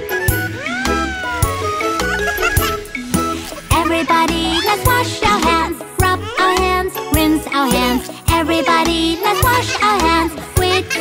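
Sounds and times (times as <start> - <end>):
bouncy children's song music: 0.0 - 11.0
cartoon baby exclaiming: 0.1 - 2.8, 3.7 - 5.5.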